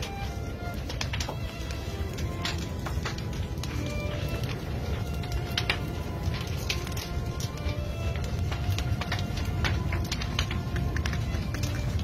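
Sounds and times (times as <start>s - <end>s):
crackling and popping of burning timber: 0.0s - 12.0s
faint music: 0.0s - 12.0s
fire roaring low: 0.0s - 12.0s.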